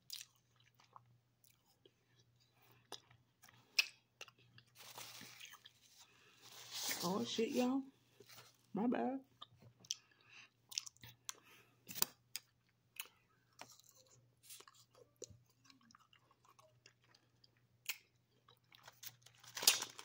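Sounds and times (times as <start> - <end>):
chewing and crunching grapes: 0.0 - 6.4, 9.3 - 20.0.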